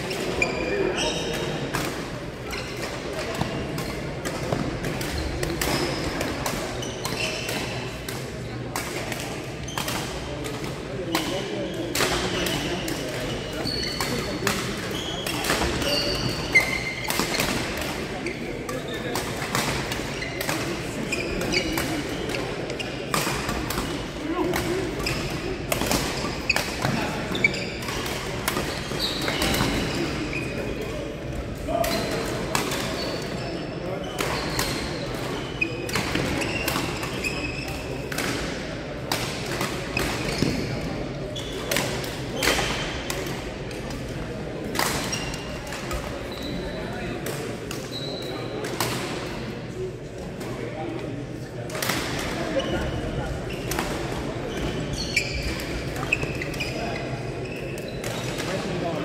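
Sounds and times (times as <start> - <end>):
voices echoing in hall: 0.0 - 59.0
shoes squeaking on floor: 0.3 - 1.6, 2.5 - 2.8, 6.8 - 7.7, 12.2 - 12.8, 13.4 - 19.2, 20.1 - 23.1, 23.9 - 28.0, 28.6 - 30.9, 32.8 - 38.0, 39.9 - 42.8, 45.1 - 45.6, 46.2 - 47.1, 47.8 - 48.6, 54.5 - 58.4
rackets striking shuttlecock: 21.4 - 30.1.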